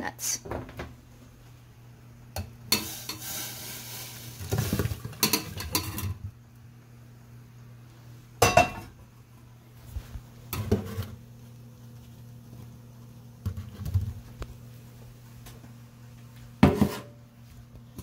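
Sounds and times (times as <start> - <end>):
pot clanking against metal sink: 4.5 - 6.2.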